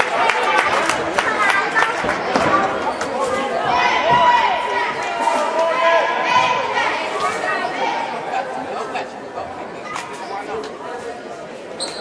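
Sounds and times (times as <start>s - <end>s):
echoing chatter of many voices: 0.0s - 12.0s.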